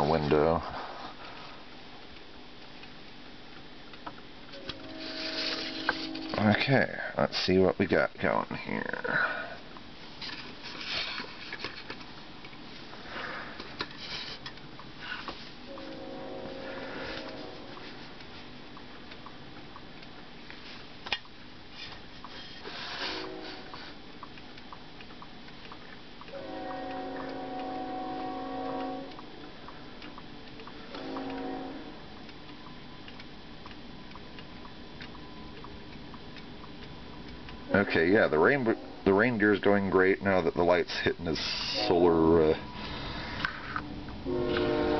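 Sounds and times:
figurines ticking faintly: 0.0s - 5.0s, 5.6s - 44.8s
steady held notes: 4.5s - 10.0s, 14.5s - 20.8s, 23.0s - 44.9s.

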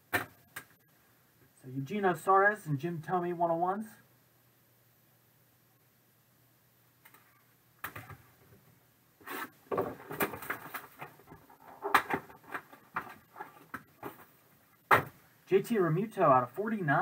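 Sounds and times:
cellophane crinkling and rustling: 9.7s - 14.4s.

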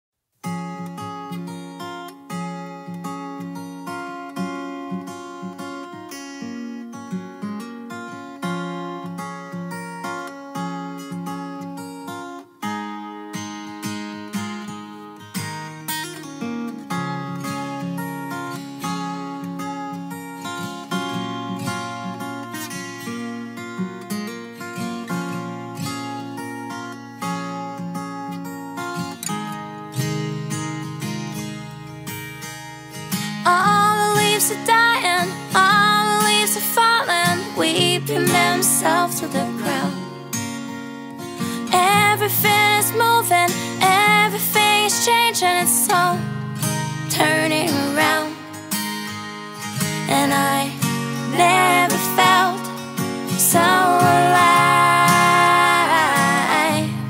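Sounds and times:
acoustic guitar plucked notes: 0.4s - 57.0s.

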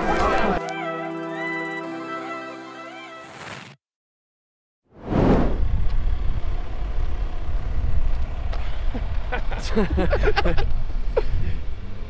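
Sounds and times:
low outdoor rumble: 5.6s - 12.0s.

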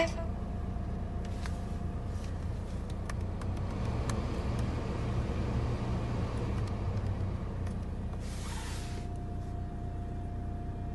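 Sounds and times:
diesel engine idling: 0.0s - 10.9s
short hiss: 8.2s - 9.1s.

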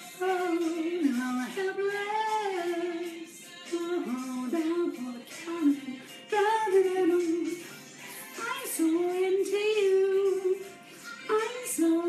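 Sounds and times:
musical accompaniment: 0.0s - 12.0s
person singing: 0.0s - 12.0s.

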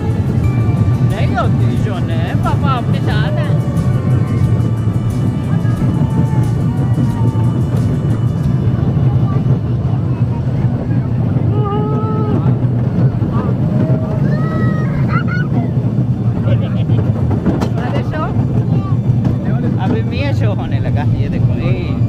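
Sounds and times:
roller coaster rumbling on track: 0.0s - 22.0s.

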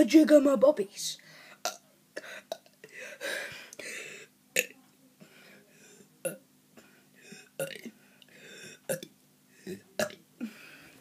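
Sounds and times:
boy burping: 1.6s - 2.8s, 4.6s - 4.8s, 6.2s - 6.4s, 7.3s - 8.0s, 8.6s - 10.6s.

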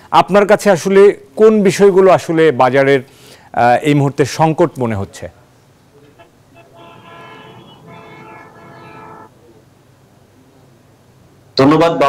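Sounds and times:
vehicle horn blaring: 6.1s - 9.4s.

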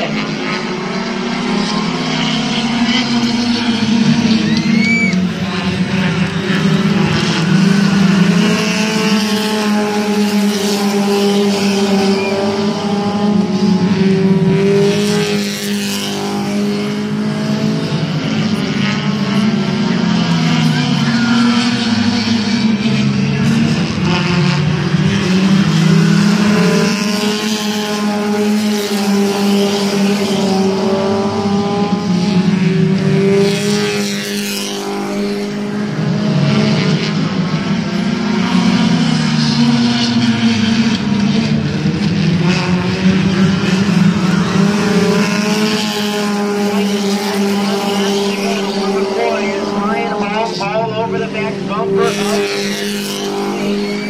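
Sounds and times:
stock car engines racing: 0.0s - 54.0s.

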